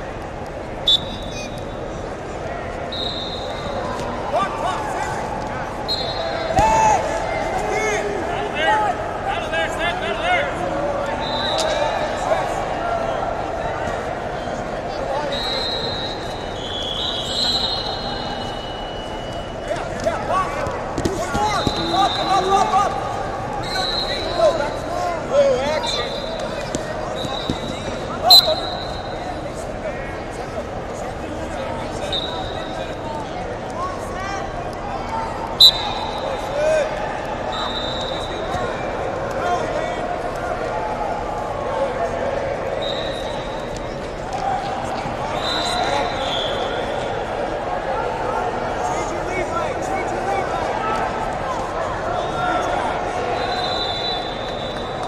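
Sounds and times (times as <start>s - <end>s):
shrill referee whistle blasts: 0.8s - 1.7s, 2.9s - 4.0s, 5.9s - 6.9s, 11.2s - 11.8s, 15.3s - 19.6s, 21.3s - 22.6s, 23.6s - 24.6s, 25.8s - 26.6s, 27.2s - 29.3s, 32.0s - 32.8s, 35.6s - 36.5s, 37.5s - 38.6s, 42.8s - 43.7s, 45.3s - 46.9s, 53.4s - 55.0s
people shouting: 6.3s - 8.3s.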